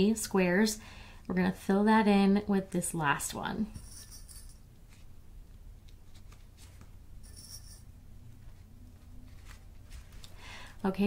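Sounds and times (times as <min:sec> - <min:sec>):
fabric rustling: 0:08.4 - 0:10.4.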